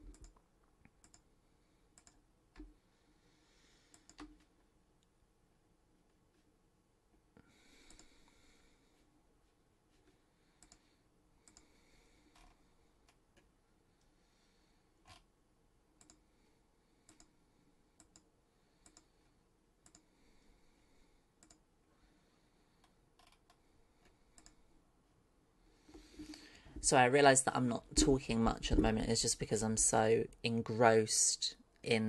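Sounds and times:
mouse and keyboard clicks: 0.0 - 1.3, 3.9 - 4.5, 11.4 - 11.7, 23.2 - 23.6.

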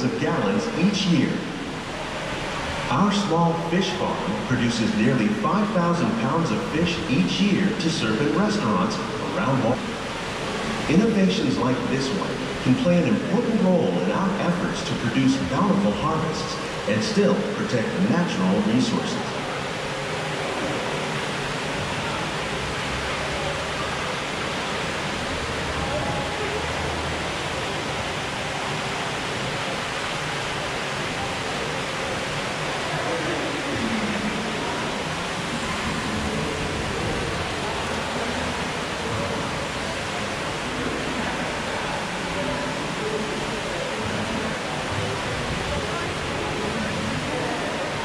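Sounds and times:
faint voices: 0.0 - 48.0
running water rushing: 0.0 - 48.0.

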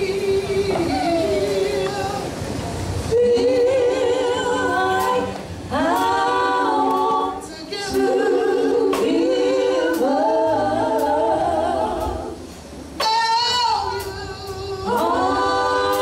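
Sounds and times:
women's gospel group singing: 0.0 - 16.0.

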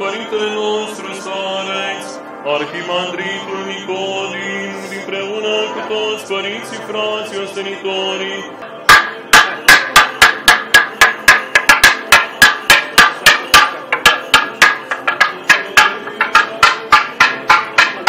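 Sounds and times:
wooden semantron struck with mallet: 8.8 - 18.0.

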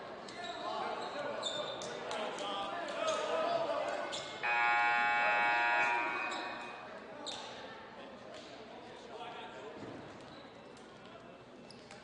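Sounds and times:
crowd chatter: 0.0 - 12.0
scoreboard buzzer horn: 4.4 - 6.7.

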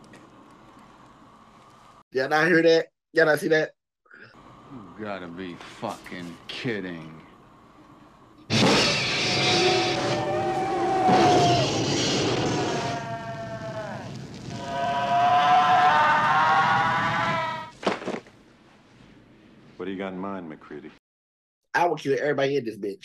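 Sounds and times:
creature shrieking: 8.5 - 17.7
flamethrower roar: 8.5 - 17.8.

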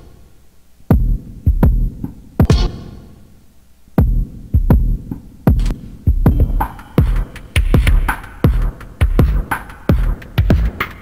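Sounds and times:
electronic beat with deep kicks: 0.9 - 2.9, 4.0 - 11.0.

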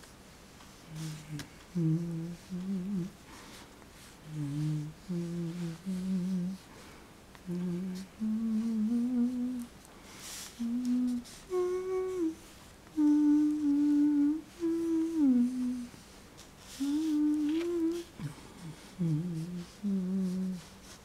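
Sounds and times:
person humming a tune: 0.9 - 3.2, 4.2 - 6.7, 7.4 - 9.7, 10.5 - 16.0, 16.7 - 21.0.

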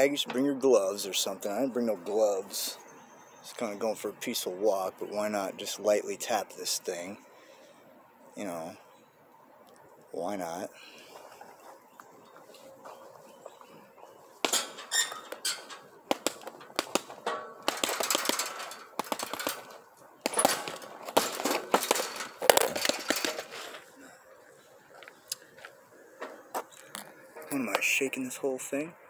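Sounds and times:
chain and metal frame clanking: 14.5 - 24.0.

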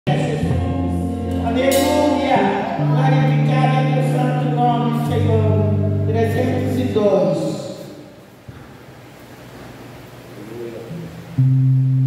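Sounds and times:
electric guitar through amplifier: 0.1 - 8.3, 10.0 - 12.0.

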